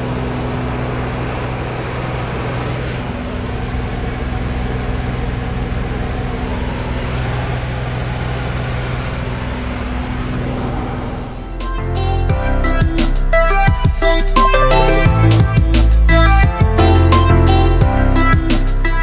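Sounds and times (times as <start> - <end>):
rushing air noise: 0.0 - 16.4
light aircraft engine drone: 0.0 - 19.0.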